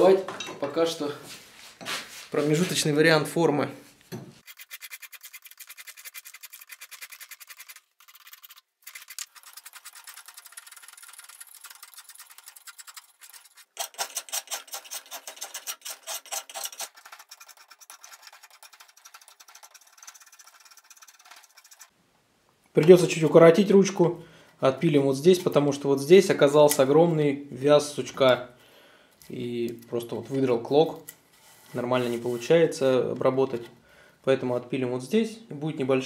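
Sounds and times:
hand rasp scraping wood: 0:04.4 - 0:21.9.

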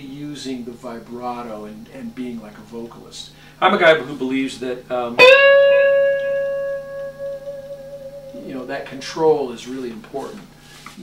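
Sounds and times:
electric guitar sustained note: 0:05.2 - 0:09.4.

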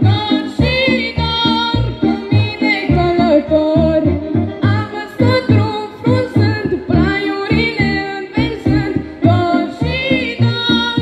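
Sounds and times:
amplified accompaniment with low beat: 0:00.0 - 0:11.0.

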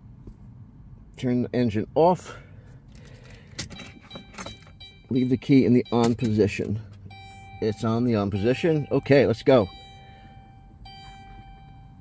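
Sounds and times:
car keys jingling: 0:02.9 - 0:12.0
ignition key clicks: 0:03.0 - 0:10.0.

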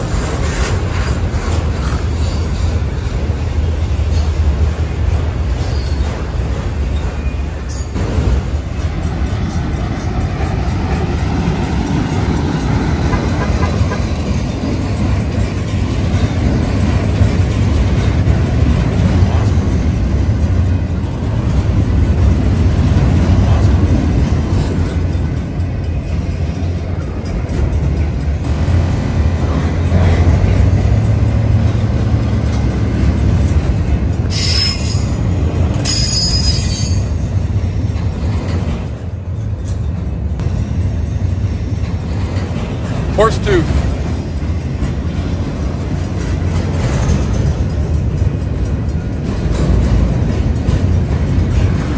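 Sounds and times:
freight train wheels rumbling: 0:00.0 - 0:51.9
high-pitched wheel squeals: 0:34.3 - 0:35.2.

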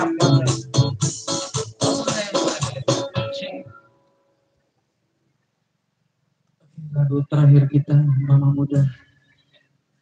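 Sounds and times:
drum beat: 0:00.0 - 0:03.3
electronic keyboard playing: 0:00.0 - 0:04.0.

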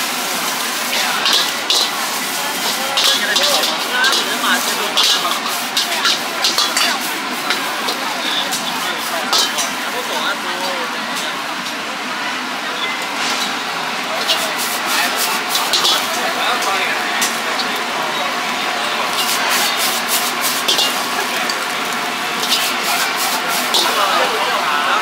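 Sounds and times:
metal utensils clinking on wok: 0:00.0 - 0:11.4, 0:12.8 - 0:17.9, 0:19.0 - 0:24.6
gas burner hiss: 0:00.0 - 0:11.8, 0:13.9 - 0:25.0
noodles sizzling in a wok: 0:00.0 - 0:25.0.

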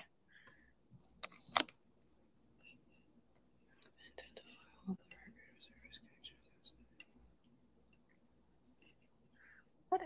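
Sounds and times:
faint whispered voice: 0:03.7 - 0:07.2.

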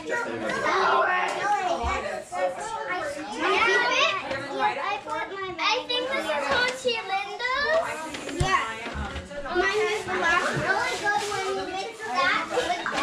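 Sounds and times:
young children talking and exclaiming: 0:00.0 - 0:13.0.

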